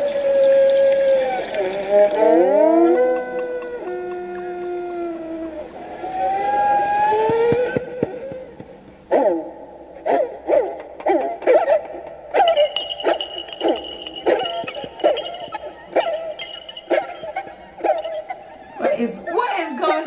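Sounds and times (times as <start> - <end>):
thin high steady tone: 12.4 - 18.8.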